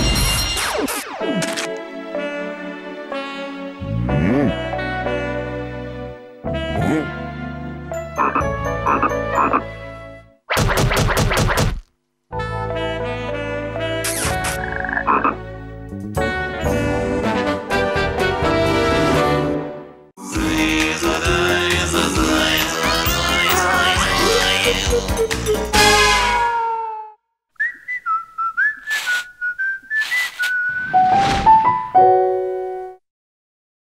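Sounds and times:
brassy theme music: 1.0s - 10.3s, 12.3s - 26.5s
cartoon frog croak: 8.2s - 9.7s, 14.1s - 15.4s
person whistling a tune: 27.6s - 31.0s.

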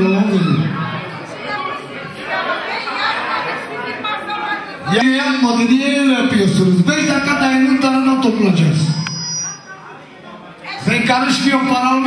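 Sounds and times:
crowd chatter: 0.0s - 12.0s.

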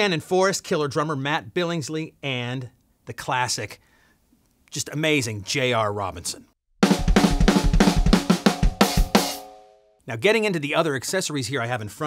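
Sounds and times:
drum kit played with sticks: 6.8s - 9.7s.

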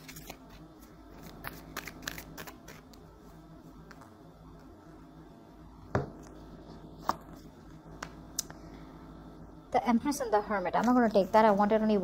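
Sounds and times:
cards being shuffled: 0.0s - 3.0s.

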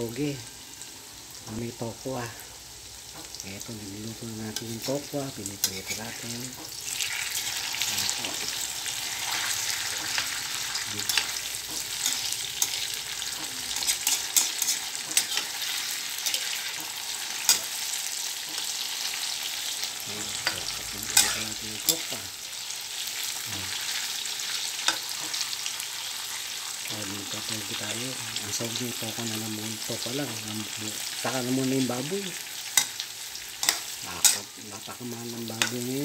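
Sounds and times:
tofu sizzling in hot oil: 0.1s - 36.0s.

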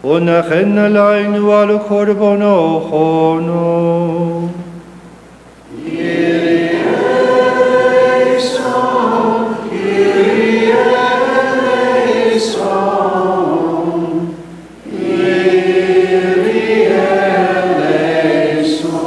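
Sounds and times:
voices singing a chant together: 5.7s - 19.0s.

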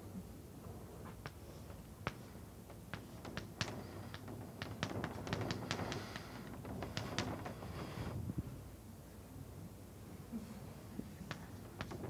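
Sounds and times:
chalk tapping and scraping on blackboard: 1.2s - 7.3s.

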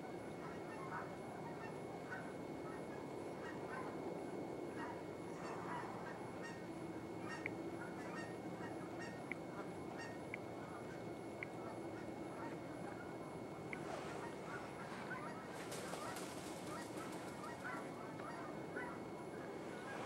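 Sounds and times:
geese honking: 0.4s - 4.0s, 4.7s - 20.0s.

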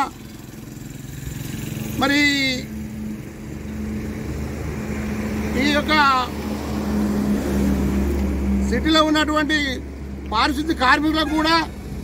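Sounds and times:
man speaking: 5.5s - 6.4s, 8.6s - 11.8s.

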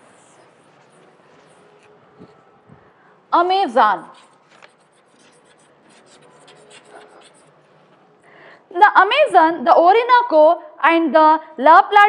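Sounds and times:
chalk scratching on chalkboard: 0.0s - 2.4s, 3.4s - 7.8s.

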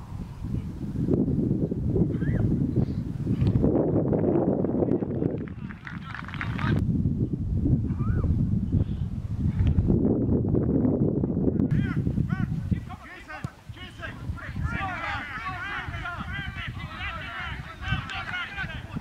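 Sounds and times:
wind buffeting microphone: 0.0s - 19.0s
distant shouts: 11.7s - 19.0s.

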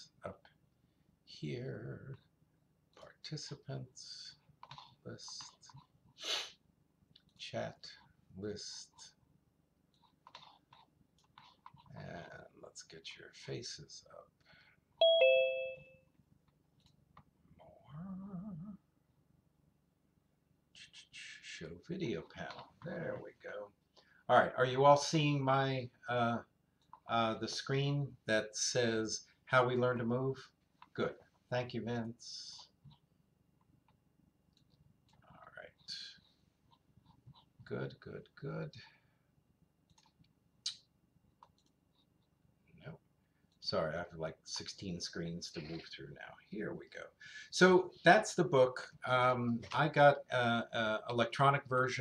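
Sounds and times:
two-note ding-dong chime: 15.0s - 16.0s
short voice sound: 17.6s - 18.8s
computer mouse clicks: 39.8s - 40.4s, 41.4s - 42.1s.

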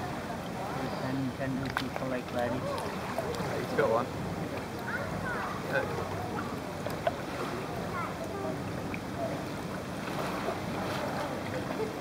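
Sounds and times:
water and wind noise: 0.0s - 12.0s
water lapping against hull: 0.0s - 12.0s.

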